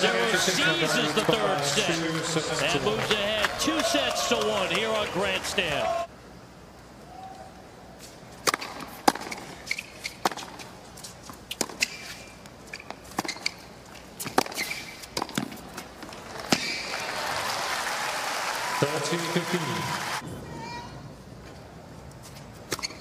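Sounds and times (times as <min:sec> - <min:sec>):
crowd applauding: 0:00.0 - 0:06.1, 0:16.2 - 0:20.2
racket hitting tennis ball: 0:08.4 - 0:10.7, 0:14.2 - 0:15.6
rubber shoe squeaks: 0:09.3 - 0:10.3, 0:11.8 - 0:15.2, 0:22.7 - 0:23.0.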